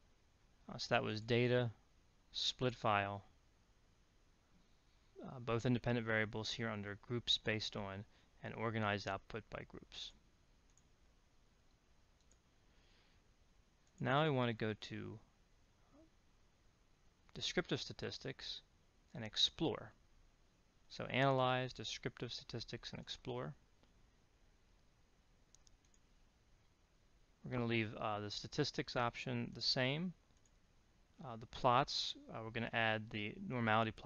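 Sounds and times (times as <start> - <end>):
faint computer mouse clicks: 11.7 - 12.5, 25.5 - 26.0.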